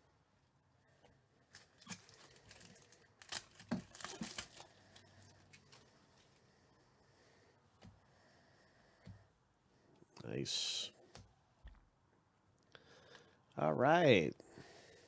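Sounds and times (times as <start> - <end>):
wrapper crinkling and tearing: 1.5 - 6.4.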